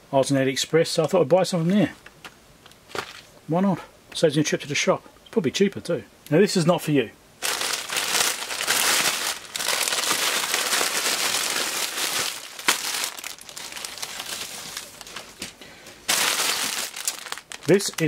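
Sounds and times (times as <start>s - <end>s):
plastic bag rustling: 7.4s - 18.0s
plastic mailer bag crinkling: 7.4s - 18.0s.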